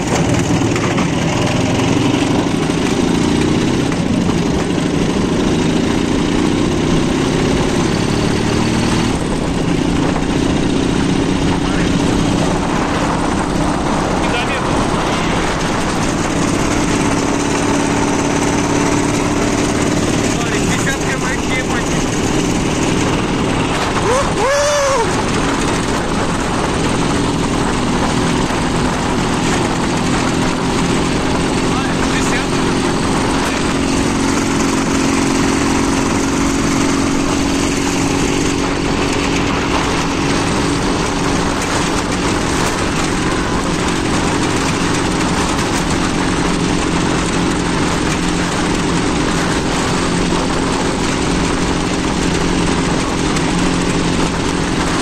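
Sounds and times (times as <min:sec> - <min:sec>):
motorcycle engine running: 0:00.0 - 0:55.0
wind noise: 0:00.0 - 0:55.0.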